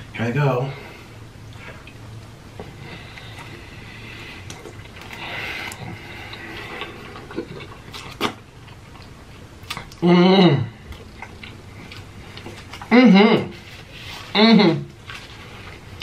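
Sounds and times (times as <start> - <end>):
person chewing food: 1.4 - 10.0, 10.7 - 16.0.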